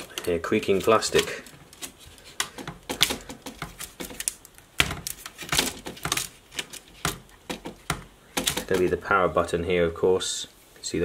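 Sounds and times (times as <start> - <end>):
plastic clips clicking and snapping: 0.0 - 8.9
plastic casing creaking: 0.0 - 9.0.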